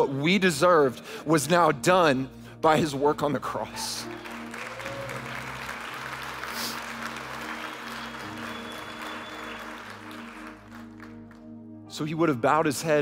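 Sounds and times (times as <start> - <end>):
congregation applauding: 3.6 - 11.6
soft sustained chords: 5.7 - 13.0.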